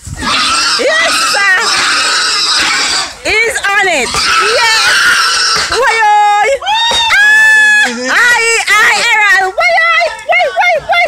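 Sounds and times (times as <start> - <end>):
hog squealing: 0.2 - 6.2.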